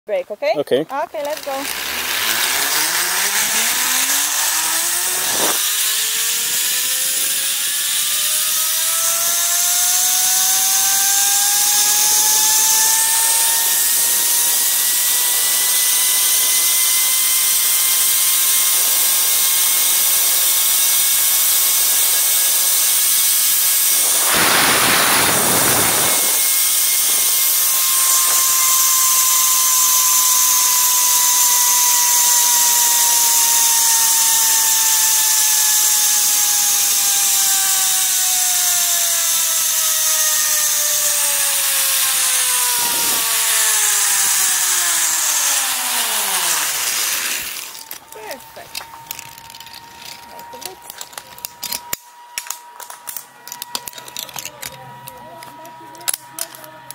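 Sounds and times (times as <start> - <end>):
pulley wheels whining on steel cable: 0.9 - 56.9
rushing air hiss: 24.0 - 27.6.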